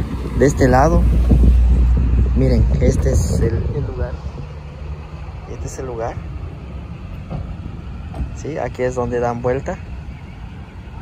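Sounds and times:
street traffic rumble: 0:00.0 - 0:11.0.

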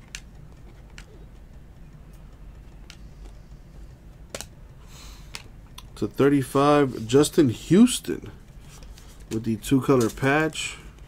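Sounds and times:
card edges clicking: 0:00.0 - 0:03.5, 0:04.1 - 0:06.0
low steady hum: 0:00.0 - 0:11.0.

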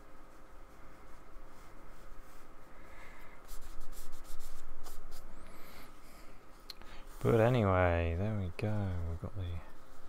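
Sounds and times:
paintbrush dabbing on card: 0:00.4 - 0:05.8.

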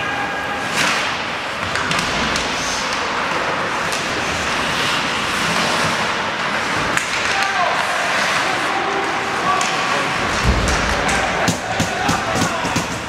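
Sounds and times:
crowd noise: 0:00.0 - 0:13.0
skates on ice: 0:00.6 - 0:13.0
sticks and puck hitting boards: 0:00.7 - 0:04.2, 0:06.8 - 0:08.5, 0:09.4 - 0:13.0.

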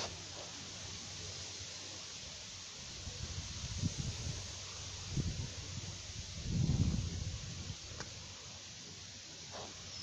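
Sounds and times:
rustling leaves: 0:00.0 - 0:10.0
wind buffeting microphone: 0:03.1 - 0:08.3.

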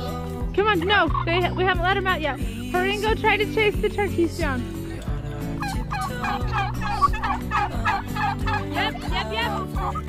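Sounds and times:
turkeys calling: 0:00.8 - 0:01.6, 0:05.6 - 0:10.0.

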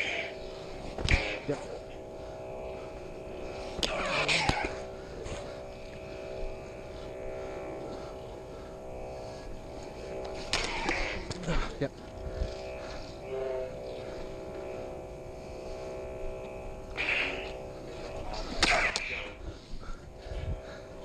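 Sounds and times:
lightsaber electronic hum: 0:00.0 - 0:21.0
saber swing and clash effects: 0:18.6 - 0:19.3.

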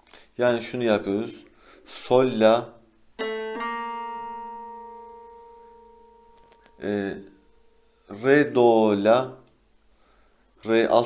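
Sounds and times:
plucked long-neck lute note ringing: 0:03.2 - 0:08.2.

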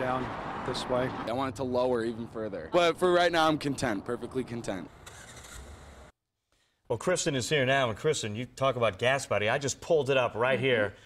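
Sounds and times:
traffic noise: 0:00.0 - 0:06.1.

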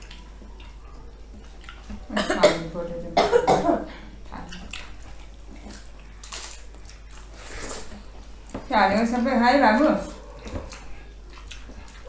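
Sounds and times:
clicks and rustles of eating: 0:00.0 - 0:02.4, 0:04.2 - 0:12.0
person coughing: 0:02.2 - 0:04.0.

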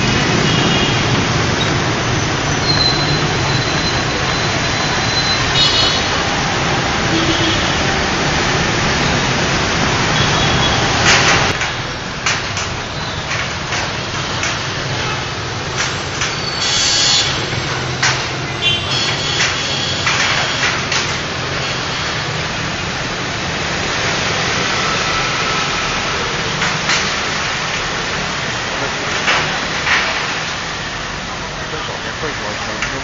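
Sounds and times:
motorbike and scooter traffic: 0:00.0 - 0:33.0.

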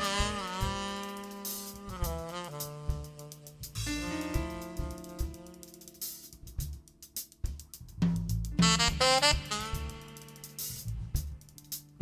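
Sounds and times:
electric bass line: 0:00.0 - 0:01.1, 0:01.7 - 0:12.0
cymbal and hi-hat strikes: 0:00.0 - 0:12.0
saxophone held note: 0:03.8 - 0:06.5
kick drum thumps: 0:04.1 - 0:05.5.

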